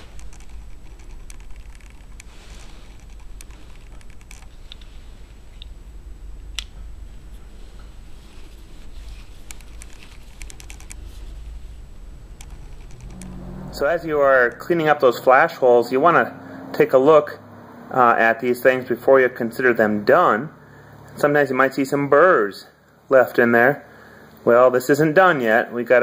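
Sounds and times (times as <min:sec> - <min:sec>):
low rumble: 0:00.0 - 0:17.7.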